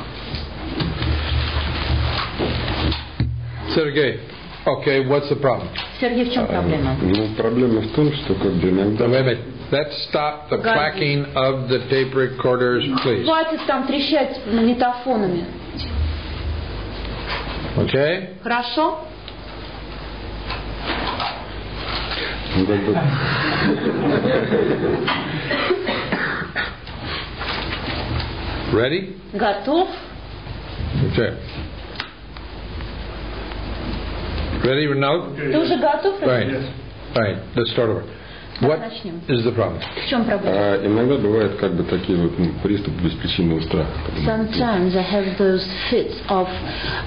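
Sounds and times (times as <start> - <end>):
rustling crackling noise: 0.0 - 3.2
steady low hum: 0.0 - 47.0.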